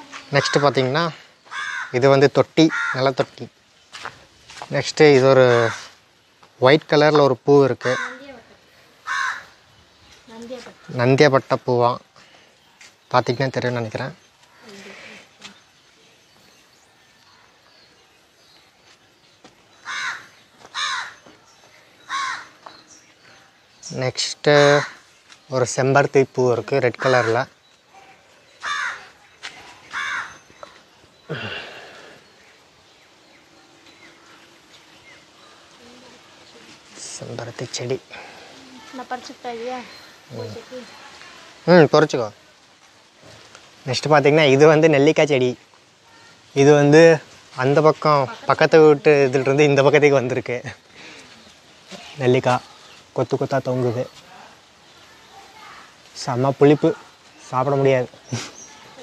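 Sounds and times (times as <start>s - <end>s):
crow cawing: 0.3s - 3.3s, 5.4s - 6.0s, 7.8s - 9.6s, 14.4s - 15.3s, 19.8s - 21.4s, 22.0s - 22.7s, 24.6s - 25.1s, 26.9s - 27.6s, 28.6s - 29.2s, 29.9s - 32.2s.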